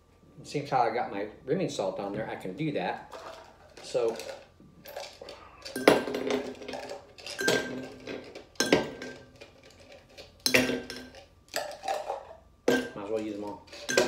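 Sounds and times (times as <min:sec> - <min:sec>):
ice cubes clinking in glass: 0:03.1 - 0:13.1, 0:13.7 - 0:14.0.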